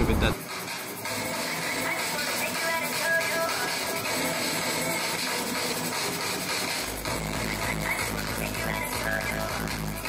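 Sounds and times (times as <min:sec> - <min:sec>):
deep bass: 0:00.0 - 0:00.4
electronic music: 0:00.0 - 0:10.0.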